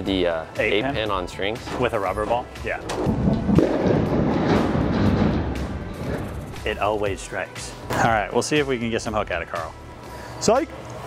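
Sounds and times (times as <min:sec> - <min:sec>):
background music: 0:00.0 - 0:11.0
bowling pins clattering: 0:01.6 - 0:06.9.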